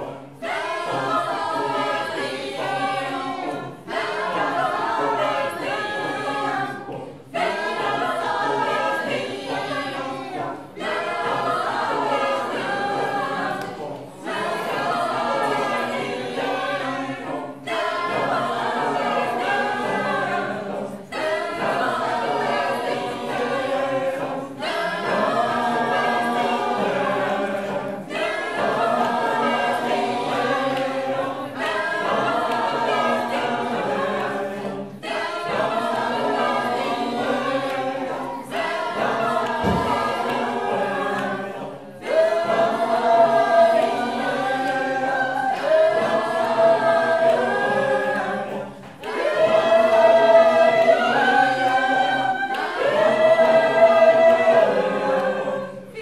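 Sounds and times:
mixed choir singing a cappella: 0:00.0 - 0:56.0.

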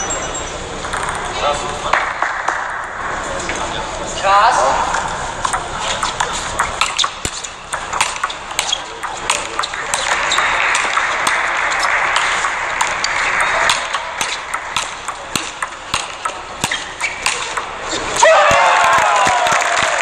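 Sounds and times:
steady noise: 0:00.6 - 0:18.2
table tennis ball clicking: 0:00.9 - 0:01.2, 0:05.5 - 0:17.8.

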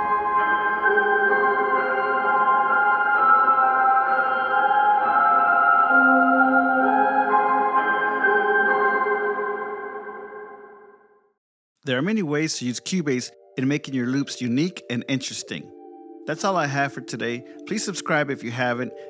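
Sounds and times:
reversed piano loop with reverb: 0:00.0 - 0:10.9.

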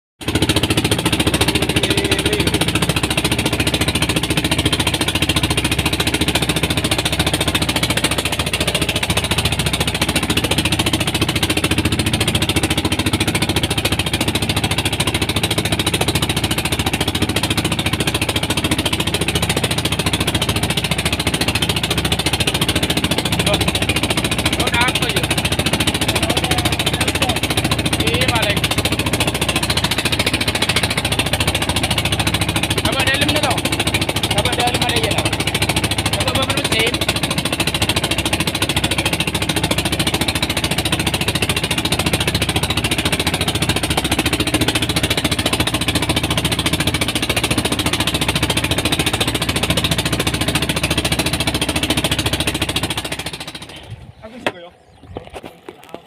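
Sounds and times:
boat engine chugging: 0:00.2 - 0:56.0.

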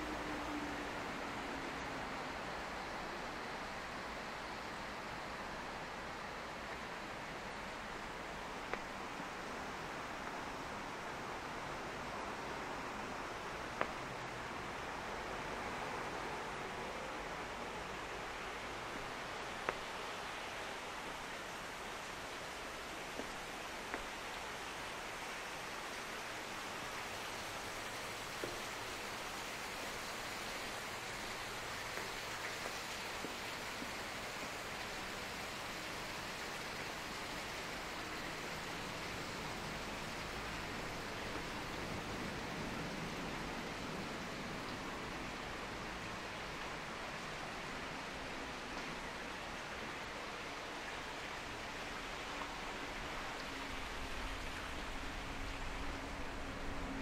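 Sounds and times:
rushing ambient noise in underpass: 0:00.0 - 0:57.0.

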